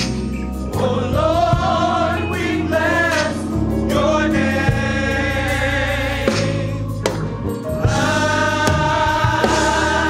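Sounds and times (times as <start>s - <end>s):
gospel choir singing: 0.0s - 10.0s
low musical accompaniment: 0.0s - 10.0s.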